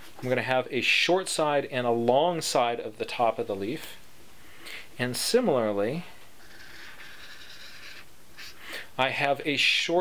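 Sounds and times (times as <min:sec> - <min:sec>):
marker pen scratching on paper: 0:06.4 - 0:08.6.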